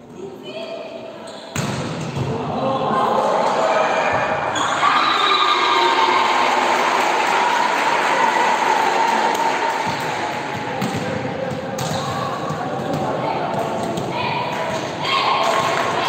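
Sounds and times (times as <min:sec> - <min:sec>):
ball bouncing on hall floor: 0:01.5 - 0:02.4, 0:09.8 - 0:14.8
people cheering and shouting: 0:02.3 - 0:10.9, 0:14.1 - 0:16.0.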